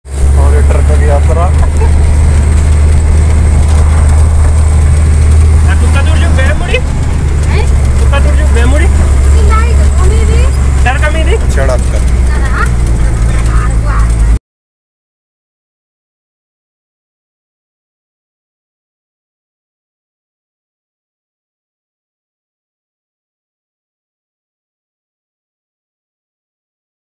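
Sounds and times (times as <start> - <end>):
heavy vehicle engine droning: 0.0 - 14.4
indistinct voices talking: 0.3 - 14.4.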